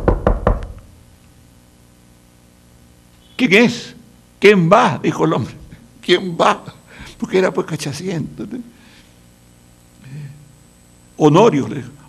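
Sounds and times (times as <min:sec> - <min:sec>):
knocking on table: 0:00.0 - 0:00.8.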